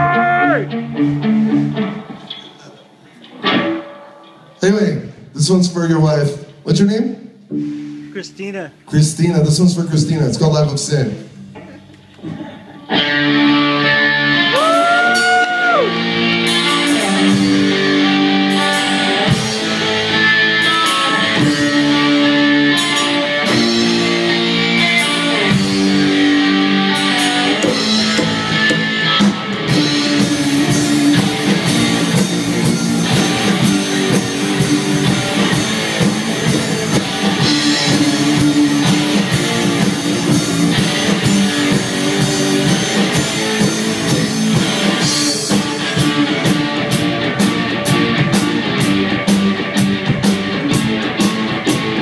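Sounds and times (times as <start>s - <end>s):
electric guitar notes ringing: 0.0s - 2.6s, 3.3s - 4.6s, 12.8s - 52.0s
drums: 0.0s - 52.0s.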